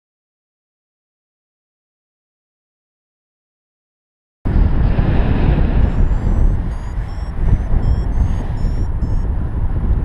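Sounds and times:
wind buffeting microphone: 0:04.5 - 0:10.0
variometer high-pitched beeps: 0:05.8 - 0:09.3.

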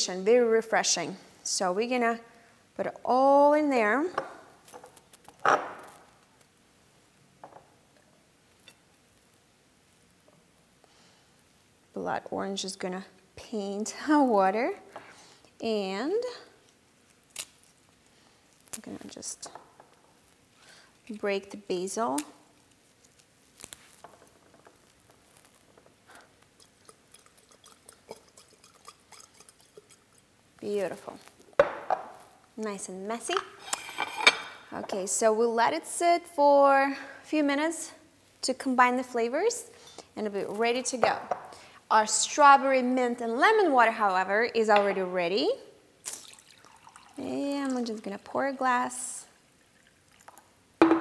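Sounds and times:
leaves tearing and crackling: 0:17.3 - 0:17.8, 0:23.1 - 0:24.0.

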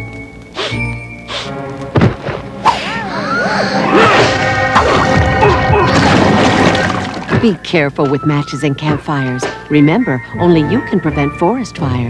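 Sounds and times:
thud: 0:02.0 - 0:02.5
cartoon music: 0:02.6 - 0:07.3.

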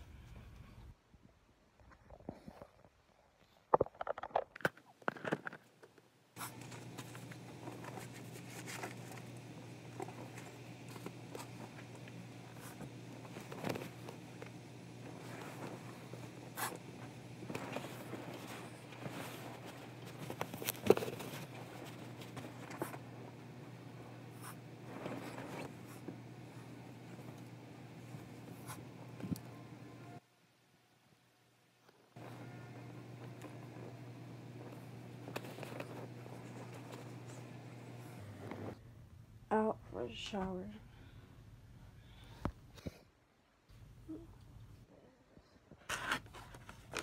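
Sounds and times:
steady low hum with hiss: 0:00.0 - 0:47.0
bedding rustling and scuffing: 0:06.4 - 0:23.1.

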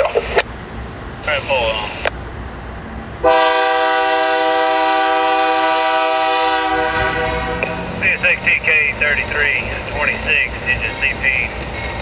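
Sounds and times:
train rumbling: 0:00.0 - 0:12.0
locomotive air horn: 0:03.2 - 0:08.0.

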